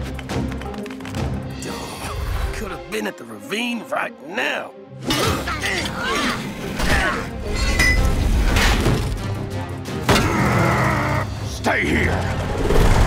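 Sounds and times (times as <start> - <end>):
cartoon background music: 0.0 - 13.0.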